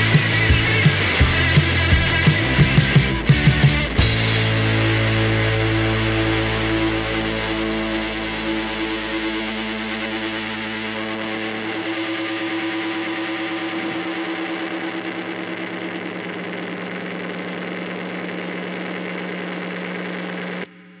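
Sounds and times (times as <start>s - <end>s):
distorted electric guitar note: 0.0s - 20.7s.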